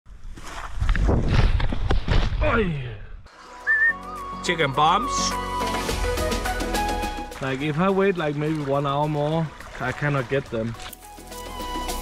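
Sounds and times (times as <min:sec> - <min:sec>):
high whistle-like tone: 0:03.6 - 0:05.5.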